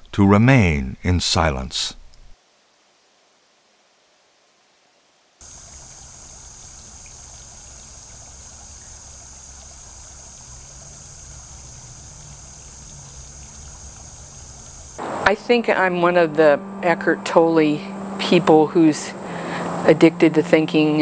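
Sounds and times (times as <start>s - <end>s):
high hiss: 5.4s - 16.1s, 17.8s - 21.0s
stream water flowing: 5.4s - 21.0s.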